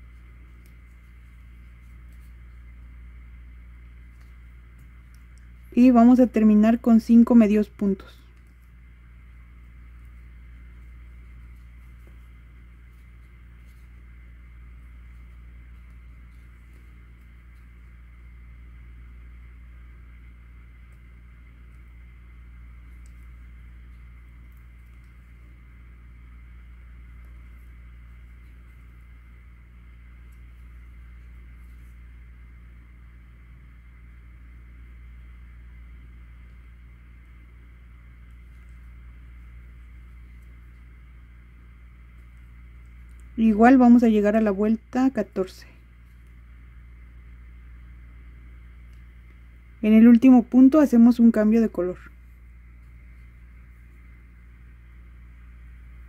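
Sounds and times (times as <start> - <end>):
faint high whine: 0.0 - 56.0
low background hum: 0.0 - 56.0.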